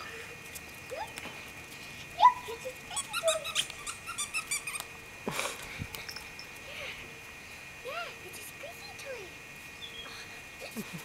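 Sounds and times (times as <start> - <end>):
puppy yipping and whimpering: 3.0 - 4.8.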